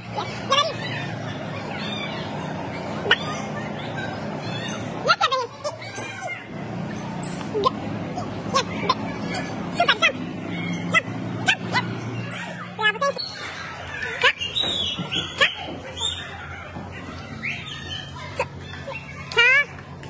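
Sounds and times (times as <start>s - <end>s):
young children's voices: 0.0s - 20.0s.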